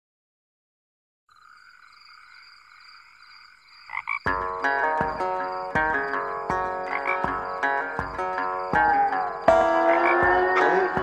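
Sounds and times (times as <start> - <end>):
country guitar and band music: 4.3 - 11.0
high-pitched chirring: 8.2 - 11.0.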